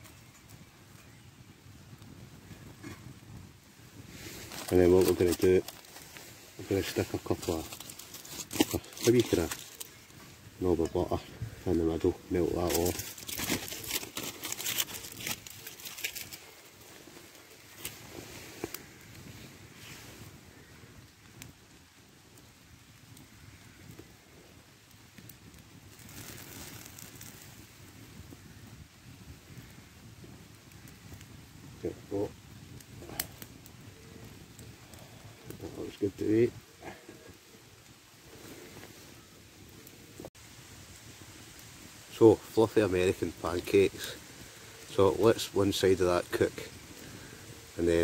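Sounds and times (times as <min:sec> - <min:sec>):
fire crackling: 0:00.0 - 0:48.0
low rush of flames: 0:00.0 - 0:48.0
butter sizzling in a frying pan: 0:24.6 - 0:33.6.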